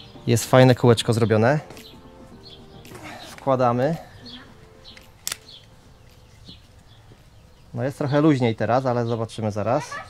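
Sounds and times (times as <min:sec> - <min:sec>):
microphone mount clicking onto camera: 0:04.9 - 0:05.7.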